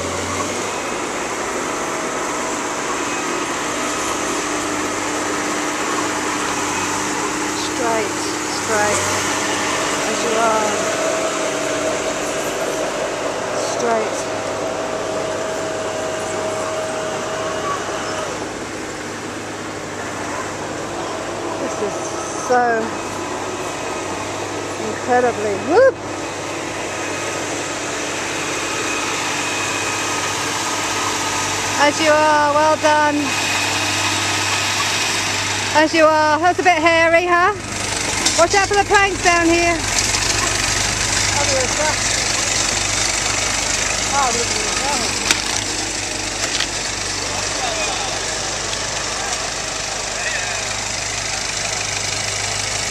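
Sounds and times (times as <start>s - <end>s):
vehicle engine running slowly: 0.0s - 52.9s.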